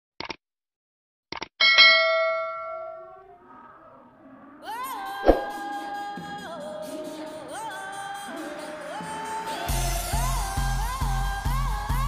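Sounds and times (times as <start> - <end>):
bell ding: 1.6 - 3.2.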